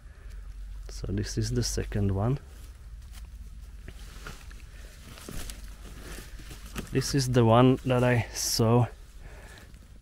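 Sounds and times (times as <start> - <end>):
rustling of twigs and leaf litter: 0.2 - 10.0.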